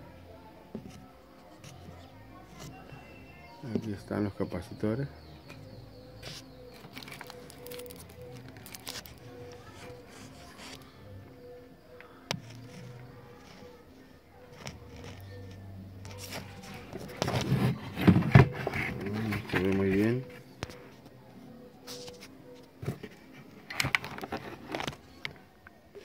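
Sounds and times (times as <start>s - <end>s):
indistinct background voices: 0.0s - 26.0s
music: 0.0s - 26.0s
handling clicks and scrapes: 5.5s - 10.9s, 14.5s - 20.8s, 21.8s - 25.4s.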